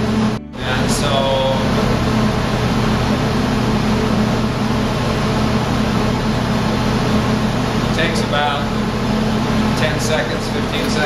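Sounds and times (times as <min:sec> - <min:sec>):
cooling fan noise: 0:00.0 - 0:11.0
electrical hum: 0:00.0 - 0:11.0.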